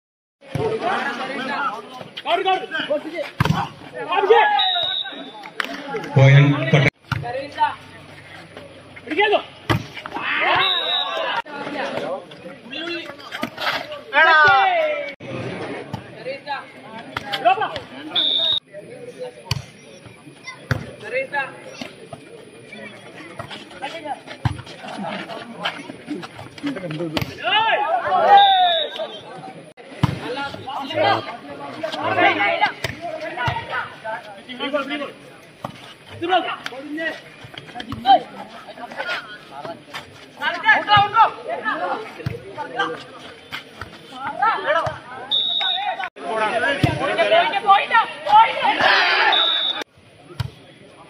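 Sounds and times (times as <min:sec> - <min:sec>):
background chatter: 0:00.4 - 0:51.0
voices shouting: 0:00.6 - 0:06.3, 0:09.1 - 0:13.0, 0:14.0 - 0:15.2, 0:27.3 - 0:35.3, 0:40.4 - 0:43.2, 0:44.1 - 0:49.9.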